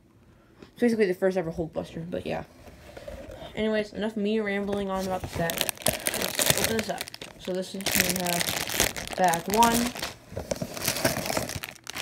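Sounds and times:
plastic bags crinkling: 4.7 - 12.0.

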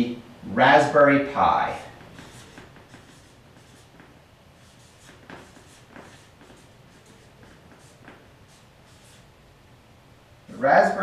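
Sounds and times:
marker scratching on paper: 1.7 - 9.3.

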